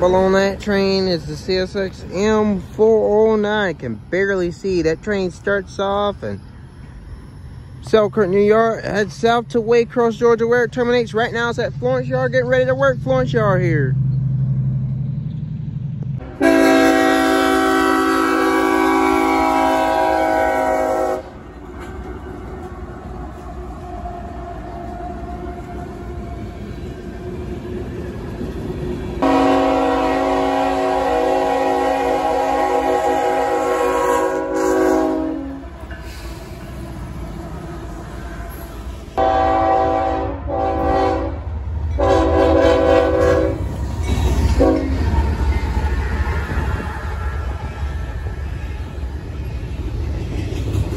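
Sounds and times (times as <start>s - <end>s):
low rumble of passing train: 0.0s - 50.9s
locomotive air horn blasts: 16.2s - 21.4s, 29.2s - 35.7s, 39.2s - 43.7s, 44.6s - 45.0s.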